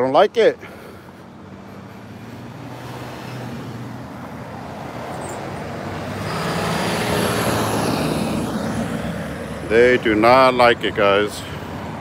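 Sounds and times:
road traffic: 0.0s - 12.0s
car passing by: 1.4s - 9.7s.

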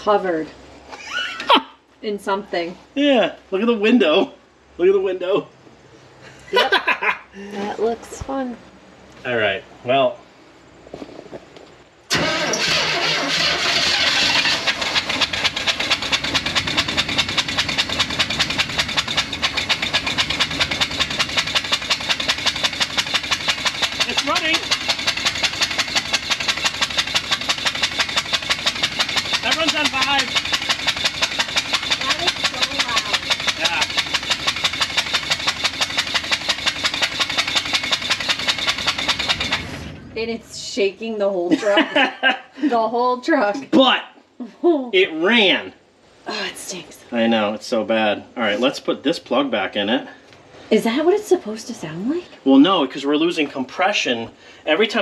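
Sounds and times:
truck engine rapid pulsing: 12.1s - 40.7s.

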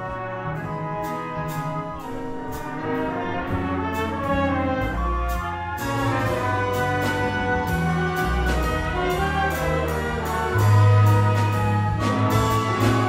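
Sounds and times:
jazz big band playing: 0.0s - 13.0s.

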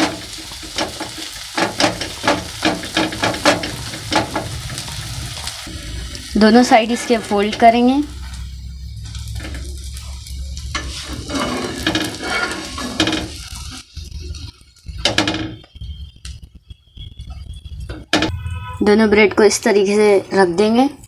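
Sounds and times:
spatula scraping on iron griddle: 0.0s - 5.2s, 6.8s - 15.6s
egg sizzling in oil: 0.0s - 18.4s.

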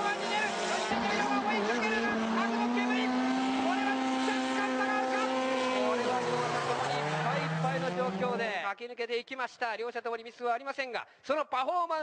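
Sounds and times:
car engines at high revs: 0.0s - 8.5s.

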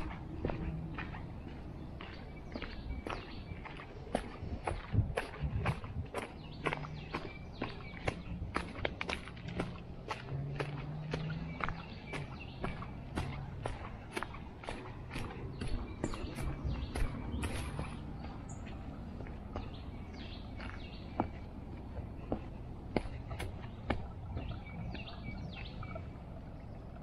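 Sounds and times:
footsteps crunching on dry leaves: 0.0s - 24.6s.

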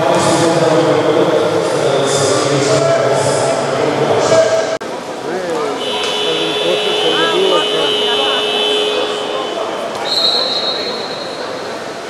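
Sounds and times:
referee's whistle blast: 5.8s - 11.5s.

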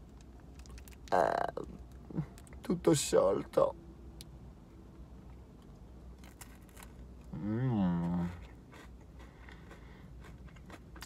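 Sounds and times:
chewing crunchy wafer: 0.0s - 2.6s, 6.2s - 11.0s.

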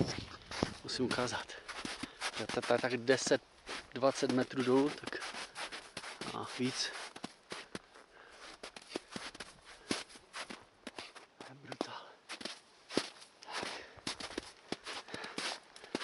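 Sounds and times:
footsteps crunching in snow: 0.0s - 16.0s.

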